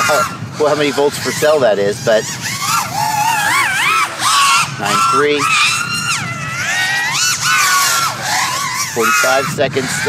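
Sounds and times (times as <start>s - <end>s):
racing drone motor whine: 0.0s - 10.0s.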